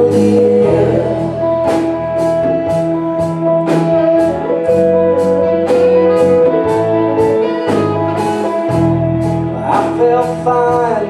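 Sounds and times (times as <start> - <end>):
bass notes: 0.0 - 11.0
drum kit: 0.0 - 11.0
electric guitar: 0.0 - 11.0.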